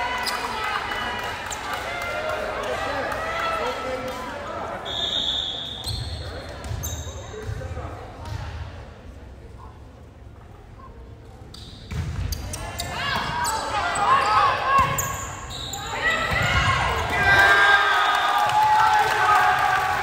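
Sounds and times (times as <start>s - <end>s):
voices of players and spectators: 0.0s - 20.0s
short high whistle: 4.8s - 5.9s.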